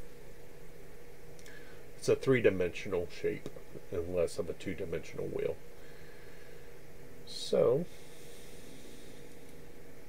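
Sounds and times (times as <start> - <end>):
faint hum: 0.0 - 10.0
low hiss: 0.0 - 10.0.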